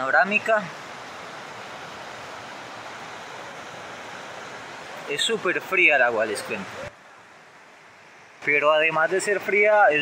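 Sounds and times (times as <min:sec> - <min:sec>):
river water rushing over rocks: 0:00.0 - 0:10.0.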